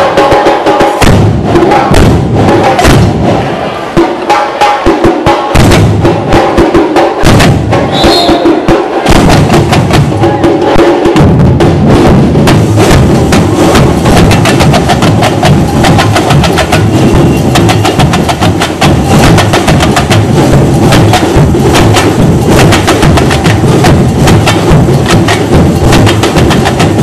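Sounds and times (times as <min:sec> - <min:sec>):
frame drum strikes: 0:00.0 - 0:27.0
bass drum pulse: 0:01.0 - 0:03.5, 0:05.5 - 0:06.4, 0:07.2 - 0:08.4, 0:09.0 - 0:10.4, 0:11.2 - 0:27.0.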